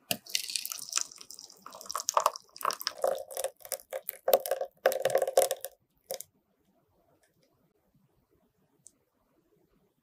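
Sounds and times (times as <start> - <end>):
cake batter plopping: 0.0 - 6.2.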